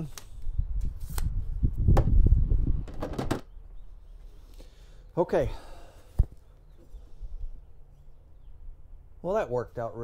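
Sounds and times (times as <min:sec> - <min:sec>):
wind buffeting microphone: 0:00.4 - 0:03.5.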